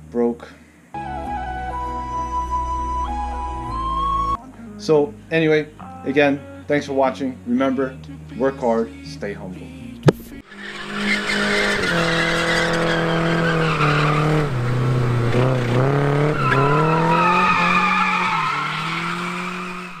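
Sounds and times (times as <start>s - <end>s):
car engine at high revs: 10.4s - 20.0s
tyres squealing: 10.5s - 20.0s.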